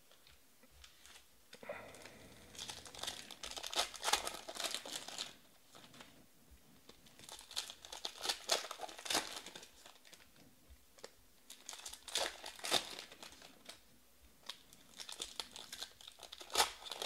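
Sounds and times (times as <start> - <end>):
foil wrapper crinkling and tearing: 0.9 - 6.1, 6.9 - 10.4, 11.0 - 13.8, 14.4 - 17.0.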